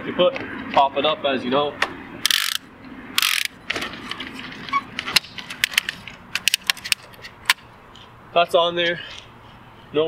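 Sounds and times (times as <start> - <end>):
sharp ratchet clicks: 2.2 - 3.6
bike rack arm scraping: 2.2 - 7.5.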